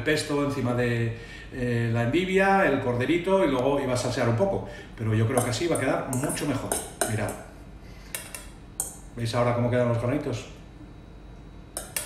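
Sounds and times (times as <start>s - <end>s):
fork clinking on metal bowl: 11.8s - 12.0s.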